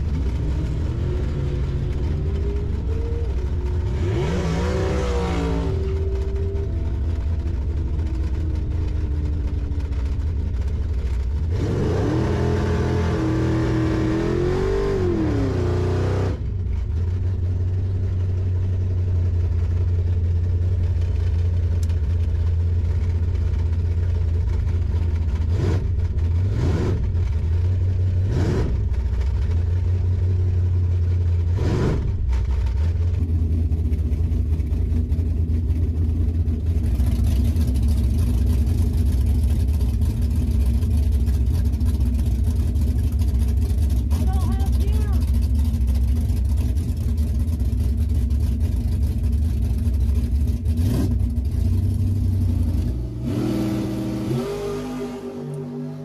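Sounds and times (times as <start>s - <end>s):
engine revving in quick blips: 0.0s - 6.7s, 52.5s - 56.0s
car engine idling with low rumble: 0.0s - 56.0s.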